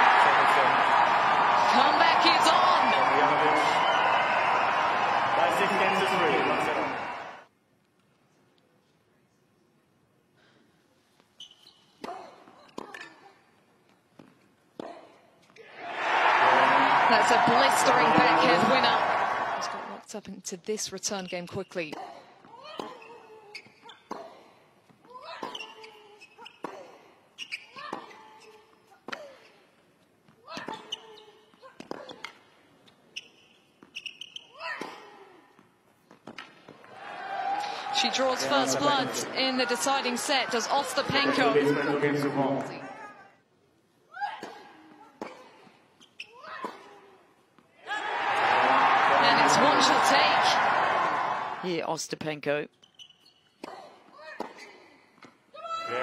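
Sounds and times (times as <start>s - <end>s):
crowd applause and cheering: 0.0s - 7.5s, 15.7s - 20.0s, 36.8s - 42.7s, 47.9s - 51.7s.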